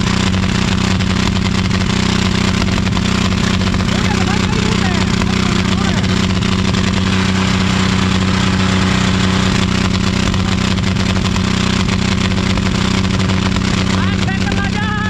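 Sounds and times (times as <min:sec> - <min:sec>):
diesel tractor engine at high revs: 0:00.0 - 0:15.0.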